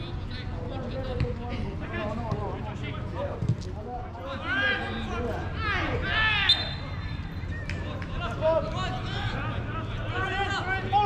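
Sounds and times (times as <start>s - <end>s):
players shouting: 4.2s - 11.0s.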